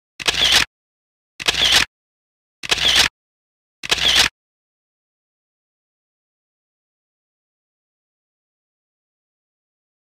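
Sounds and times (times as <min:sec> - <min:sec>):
camera shutter: 0:00.2 - 0:00.7, 0:01.4 - 0:01.9, 0:02.6 - 0:03.1, 0:03.8 - 0:04.4.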